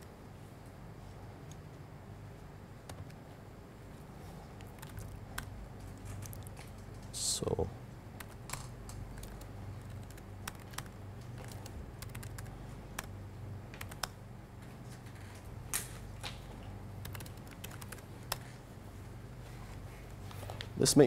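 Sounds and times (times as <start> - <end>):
low room hum: 0.0 - 21.0
typing on computer keyboard: 4.6 - 7.1, 8.2 - 13.1, 13.8 - 14.2, 17.0 - 18.4.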